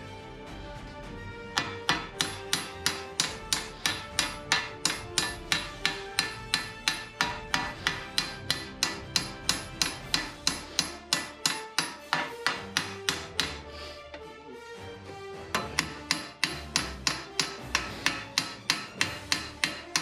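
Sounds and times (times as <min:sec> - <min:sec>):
hammer striking steel plate: 0:01.6 - 0:13.7, 0:15.5 - 0:20.0.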